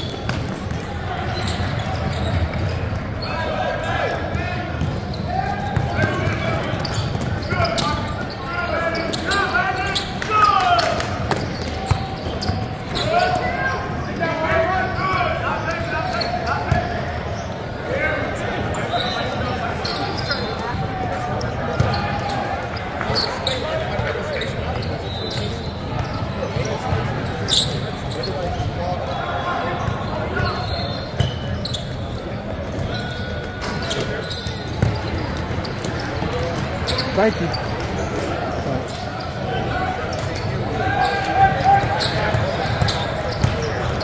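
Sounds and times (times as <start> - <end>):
shoe squeak: 0.0 - 29.0, 29.7 - 44.0
echoing voices and chatter: 0.0 - 44.0.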